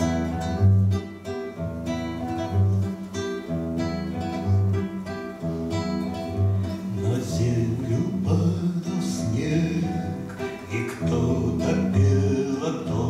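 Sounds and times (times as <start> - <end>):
acoustic guitar chords: 0.0 - 13.0.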